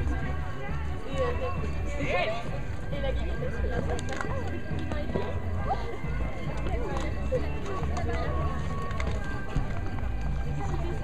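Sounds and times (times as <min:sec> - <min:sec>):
faint music: 0:00.0 - 0:11.0.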